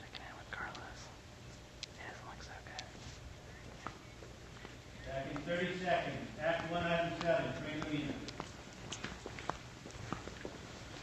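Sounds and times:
faint whispered voices: 0:00.0 - 0:01.2, 0:01.8 - 0:05.5
steady hiss: 0:00.0 - 0:11.0.

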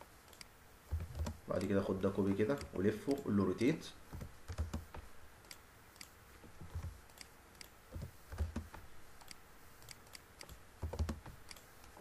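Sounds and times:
keyboard keystrokes: 0:00.3 - 0:01.8, 0:04.1 - 0:06.1, 0:06.7 - 0:12.0
mouse clicks: 0:00.3 - 0:01.8, 0:02.5 - 0:03.3, 0:04.1 - 0:12.0.

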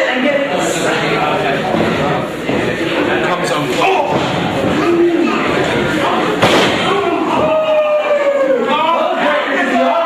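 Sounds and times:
people shouting: 0:03.8 - 0:10.0
body slamming on ring canvas: 0:06.4 - 0:07.6.

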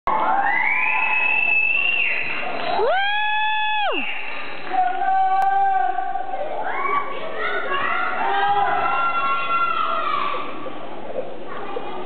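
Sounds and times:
audience cheering: 0:00.1 - 0:05.7
high-pitched whoop: 0:00.1 - 0:05.9.

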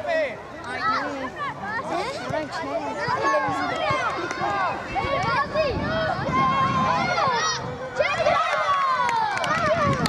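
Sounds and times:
voices shouting and calling: 0:00.0 - 0:10.0.

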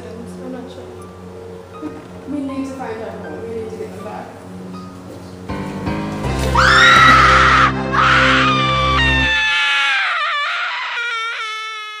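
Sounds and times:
low droning music chord: 0:00.0 - 0:06.3
high-pitched scream: 0:06.6 - 0:12.0.

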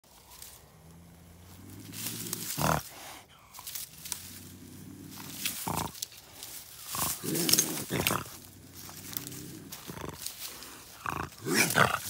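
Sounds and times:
bobcat growling: 0:00.3 - 0:12.0
bobcat spitting: 0:01.7 - 0:12.0.

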